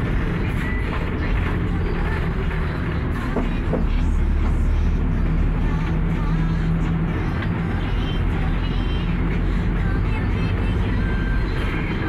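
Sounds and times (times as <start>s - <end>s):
engine and road rumble: 0.0s - 12.0s.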